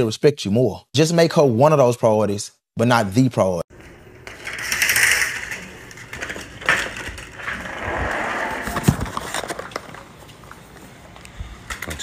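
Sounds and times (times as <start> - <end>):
sliding glass door rolling: 3.8 - 10.2.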